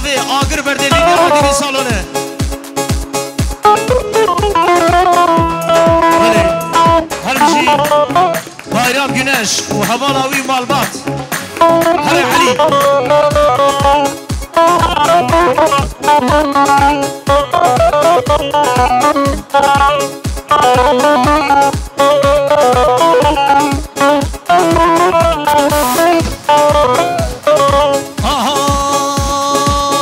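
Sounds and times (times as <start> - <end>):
steady drum beat: 0.0 - 30.0
lute playing fast melody: 0.1 - 30.0.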